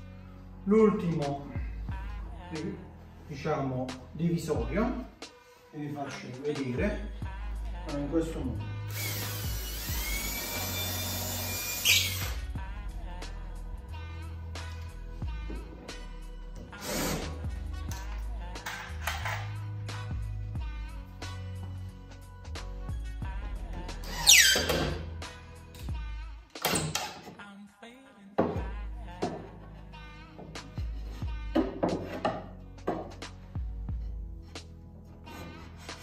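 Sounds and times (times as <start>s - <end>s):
background music: 0.0s - 36.0s
cordless drill driving a screw: 8.9s - 12.4s.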